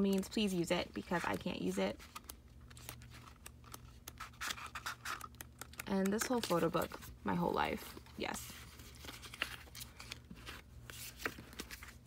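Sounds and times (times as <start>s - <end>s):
paper pages flipping: 1.0s - 12.0s.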